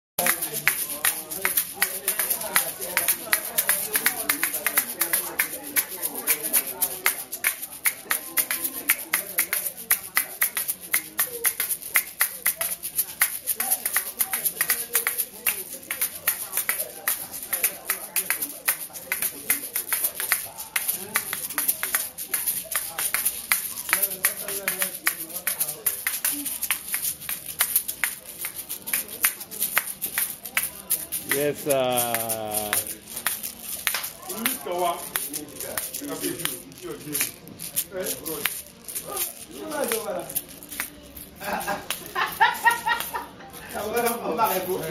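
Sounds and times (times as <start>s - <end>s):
gourd shakers clicking and rattling: 0.2s - 44.9s
man talking: 31.2s - 33.0s.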